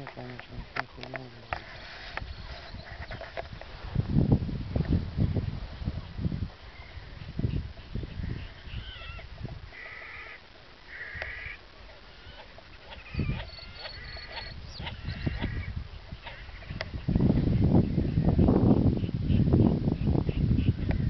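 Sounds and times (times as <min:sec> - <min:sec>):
wild birds calling: 0:00.0 - 0:03.6, 0:06.0 - 0:21.0
wind rumble on microphone: 0:00.0 - 0:10.1, 0:10.7 - 0:21.0.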